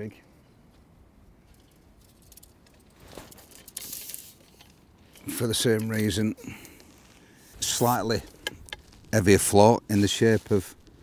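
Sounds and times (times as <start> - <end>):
light clicks and rustles: 0.7 - 11.0
fishing pole being handled: 1.5 - 9.2.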